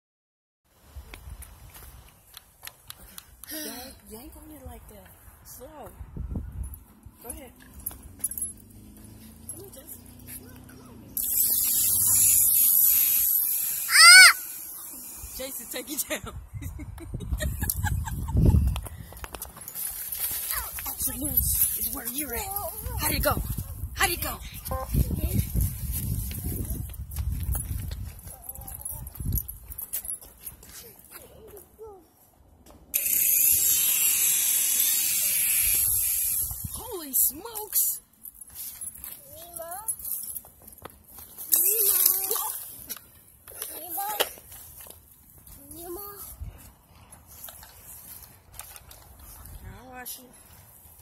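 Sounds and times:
wind on microphone: 5.9s - 6.9s, 16.3s - 19.2s, 22.7s - 29.7s
toy helicopter motor whine: 11.2s - 15.6s, 33.0s - 36.7s
child shouting: 13.8s - 14.6s.

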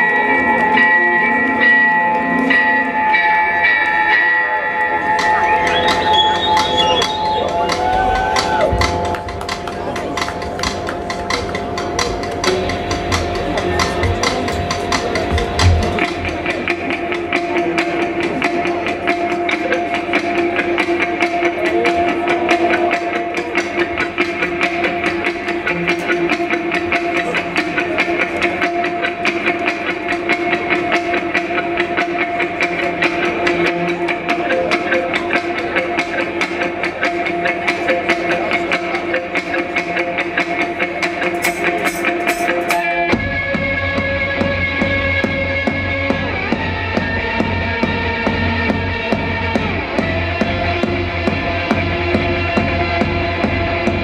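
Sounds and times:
heavy bass: 5.3s - 19.2s, 43.0s - 54.0s
live rock band: 11.9s - 54.0s.

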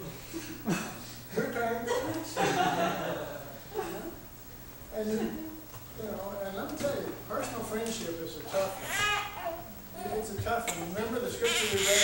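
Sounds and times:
man speaking into a microphone: 10.0s - 12.0s.

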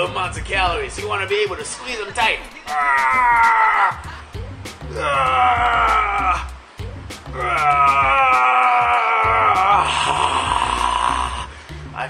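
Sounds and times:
background music with beat: 0.0s - 12.0s
man groaning with effort: 2.7s - 4.2s, 4.8s - 6.6s, 7.3s - 11.5s.

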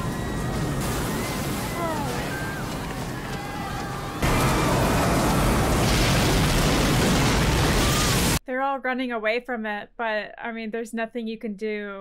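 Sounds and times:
rush of crashing water: 0.0s - 8.4s.

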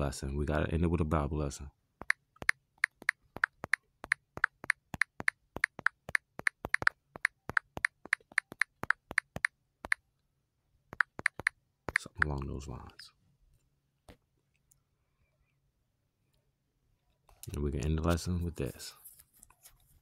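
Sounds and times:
smartphone keyboard typing clicks: 2.0s - 10.0s, 10.9s - 12.5s.

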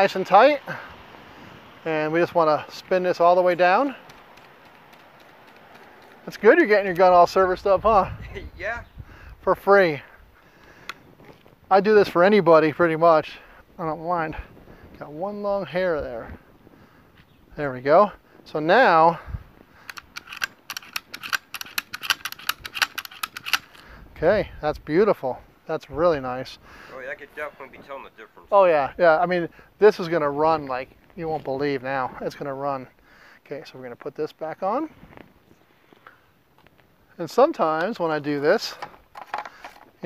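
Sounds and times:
background hiss: 0.0s - 40.0s
shotgun action clicking: 4.0s - 6.2s, 19.8s - 23.8s.

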